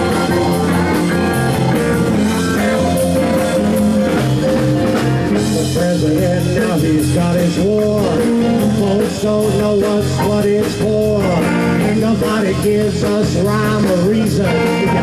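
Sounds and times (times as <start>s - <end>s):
blues rock band playing: 0.0s - 15.0s
drums: 0.0s - 15.0s
electric bass: 0.0s - 15.0s
electric guitar: 0.0s - 15.0s
keyboard: 0.0s - 15.0s
man singing: 5.3s - 15.0s.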